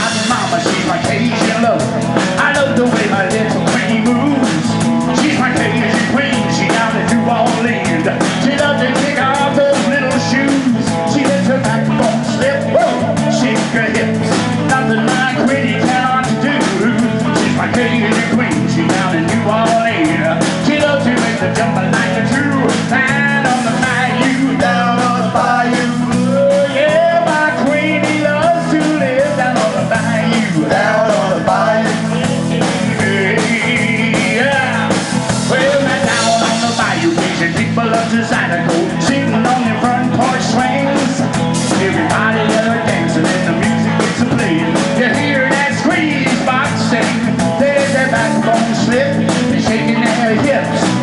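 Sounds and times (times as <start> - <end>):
bending lead guitar line: 0.0 - 51.0
live blues-rock band playing: 0.0 - 51.0.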